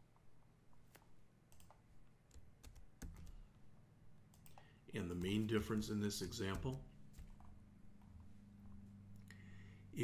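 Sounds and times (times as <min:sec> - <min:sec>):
computer keys clicking: 0:00.8 - 0:03.6, 0:04.3 - 0:08.2
man talking: 0:04.9 - 0:06.9.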